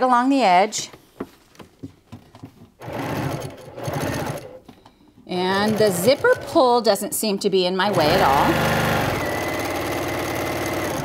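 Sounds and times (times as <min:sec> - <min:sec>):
sewing machine stitching: 0:02.8 - 0:04.7, 0:05.3 - 0:07.0, 0:07.8 - 0:11.0.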